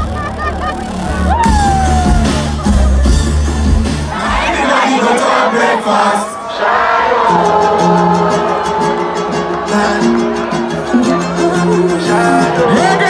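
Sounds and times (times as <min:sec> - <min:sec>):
crowd shouting and singing: 0:00.0 - 0:13.0
loud concert music: 0:00.0 - 0:13.0.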